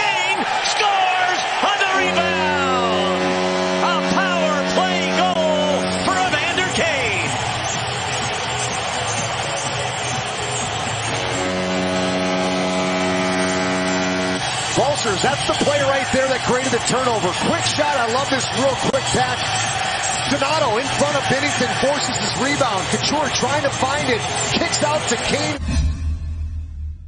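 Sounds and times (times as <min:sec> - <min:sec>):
crowd noise: 0:00.0 - 0:25.6
music: 0:01.3 - 0:27.0
arena goal horn blasts: 0:01.4 - 0:07.6, 0:10.7 - 0:25.2.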